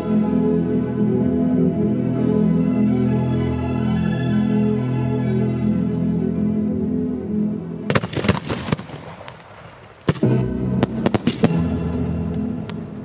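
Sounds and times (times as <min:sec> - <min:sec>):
orchestral music: 0:00.0 - 0:09.2, 0:10.1 - 0:13.0
fireworks bangs: 0:07.8 - 0:13.0.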